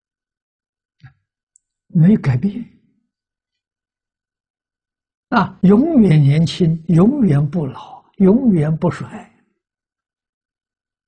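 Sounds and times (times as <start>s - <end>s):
man's voice: 2.0s - 2.8s, 5.3s - 9.4s.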